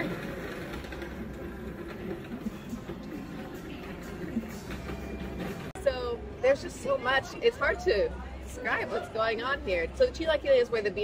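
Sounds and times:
faint background music: 0:00.0 - 0:11.0
outdoor ambience: 0:00.0 - 0:11.0.

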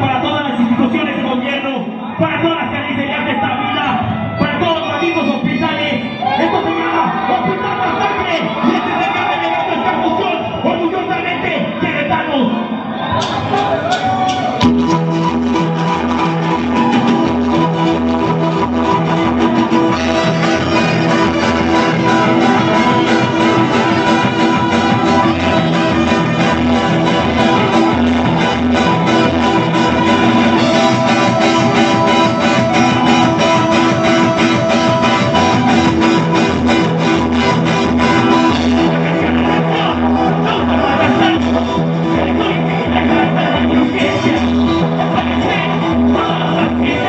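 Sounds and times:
ska band playing live: 0:02.6 - 0:47.0
electric bass line: 0:13.2 - 0:47.0.

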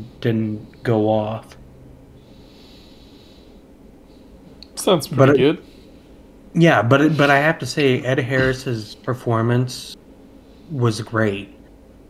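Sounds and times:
person breathing softly: 0:02.2 - 0:04.6, 0:05.6 - 0:06.3, 0:10.2 - 0:10.8.

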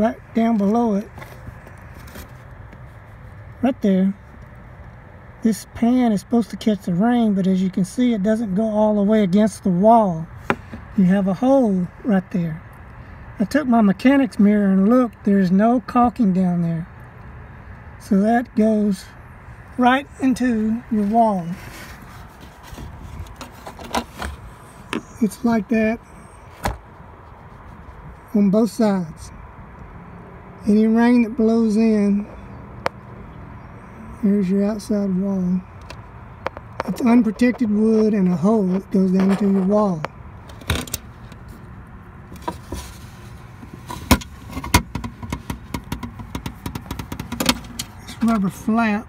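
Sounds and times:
handling clicks and knocks: 0:21.6 - 0:25.3, 0:35.8 - 0:37.7, 0:38.7 - 0:41.6, 0:42.3 - 0:43.0, 0:43.6 - 0:48.5
light clicks and knocks: 0:43.6 - 0:48.4.

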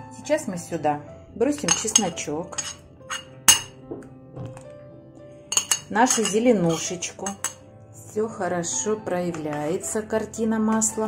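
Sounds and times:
faint background music: 0:00.0 - 0:11.0
kitchenware clinking on metal pot: 0:01.6 - 0:03.8, 0:05.5 - 0:07.6.

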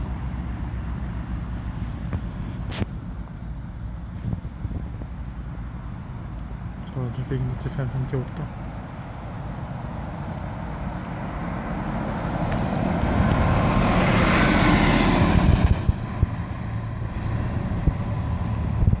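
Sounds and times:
engine and tyre noise: 0:00.0 - 0:19.0
coach passing by: 0:06.8 - 0:19.0.

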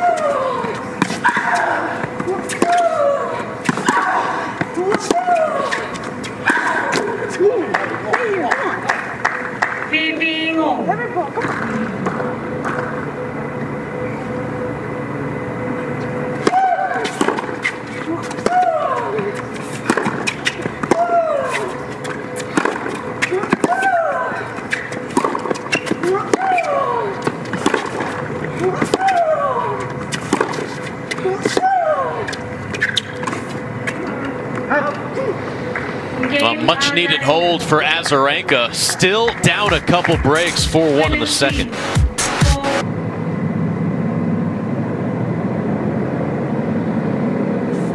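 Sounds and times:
racket hitting tennis ball: 0:02.5 - 0:02.9, 0:19.7 - 0:23.9, 0:27.5 - 0:28.2, 0:30.1 - 0:31.7.

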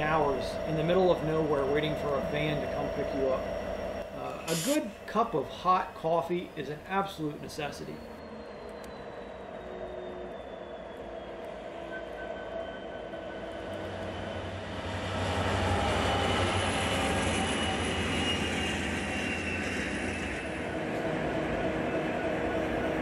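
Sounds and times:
diesel trains passing: 0:00.0 - 0:23.0.

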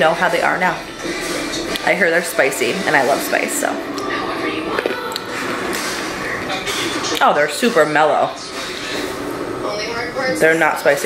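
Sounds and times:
television sound: 0:00.0 - 0:11.0.

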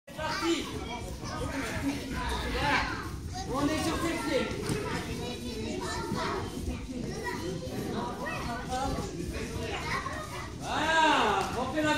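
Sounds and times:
children talking and calling out: 0:00.1 - 0:11.9.

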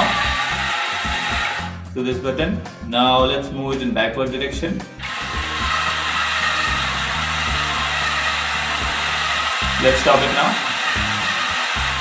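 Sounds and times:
small electric motors whirring: 0:00.0 - 0:01.8, 0:05.0 - 0:12.0.

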